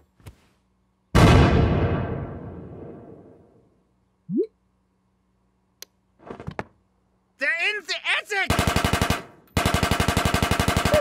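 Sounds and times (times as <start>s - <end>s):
automatic machine-gun fire: 8.5s - 11.0s.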